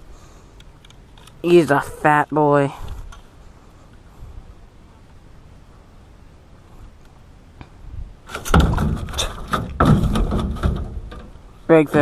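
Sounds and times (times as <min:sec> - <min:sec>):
rustling and clattering on aluminium: 0:08.2 - 0:12.0.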